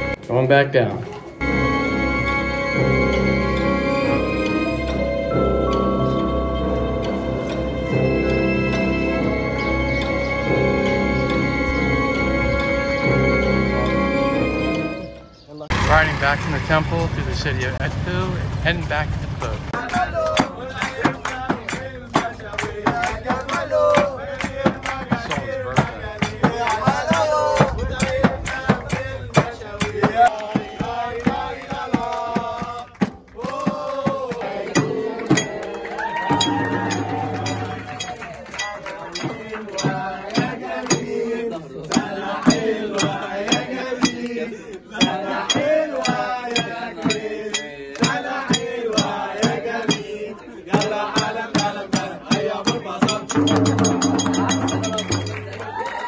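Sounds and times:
men singing together: 0:19.7 - 0:55.6
hand frame drum beat: 0:19.8 - 0:44.4, 0:45.0 - 0:55.6
hand-clapping: 0:19.8 - 0:50.1, 0:53.0 - 0:56.0.

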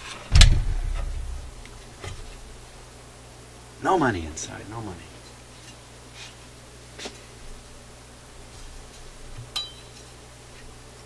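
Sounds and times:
heavy metal thud on workbench: 0:00.3 - 0:02.3
low rumble: 0:00.3 - 0:02.8.

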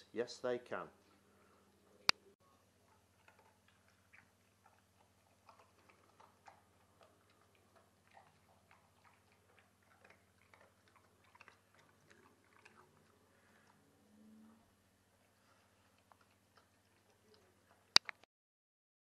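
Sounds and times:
dog chewing wet food: 0:02.7 - 0:14.2, 0:15.1 - 0:18.0.

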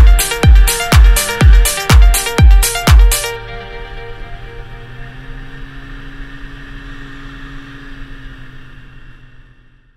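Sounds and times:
snowmobile engine running: 0:00.0 - 0:09.9.

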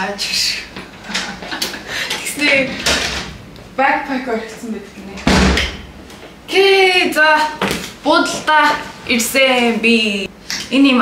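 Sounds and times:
heavy thump on wooden floor: 0:05.2 - 0:05.9.

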